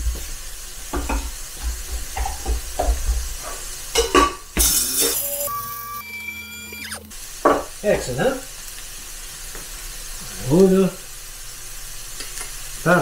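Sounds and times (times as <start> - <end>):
spice grinder motor whining: 4.6 - 7.1.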